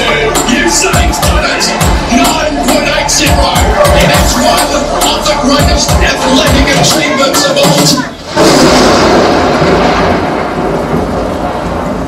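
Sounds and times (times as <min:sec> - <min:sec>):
rumbling noise effect over speakers: 0:00.0 - 0:12.0.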